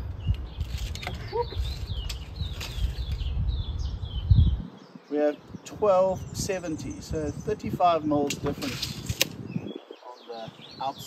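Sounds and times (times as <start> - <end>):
small birds chirping: 0.0 - 11.0
wind rumble on microphone: 0.0 - 11.0.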